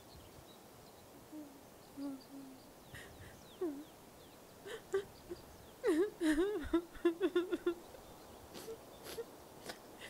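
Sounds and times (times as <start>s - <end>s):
steady low hiss: 0.0s - 10.0s
low hoot: 1.3s - 4.0s.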